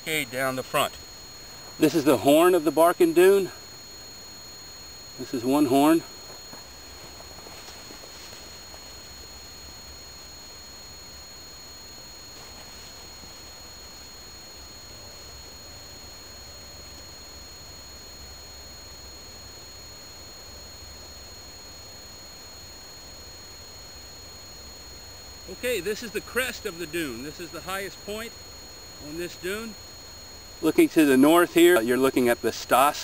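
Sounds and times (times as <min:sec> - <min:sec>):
faint high-pitched tones: 0:00.0 - 0:33.0.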